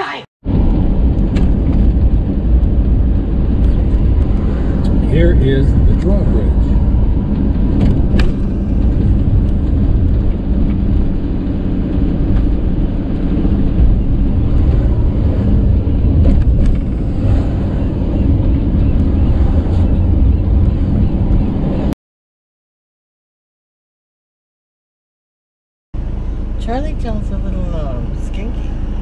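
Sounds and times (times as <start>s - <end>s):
van engine and road noise: 0.0s - 22.0s, 26.0s - 29.0s.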